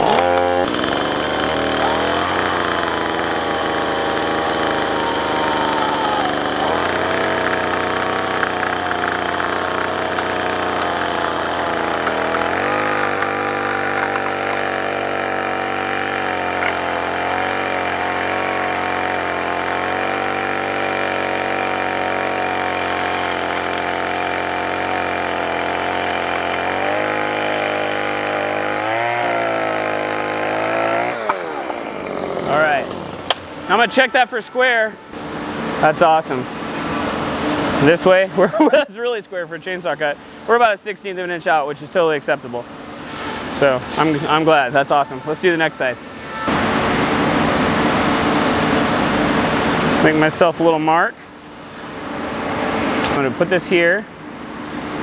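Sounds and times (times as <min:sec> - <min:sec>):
chainsaw cutting wood: 0:00.0 - 0:34.2.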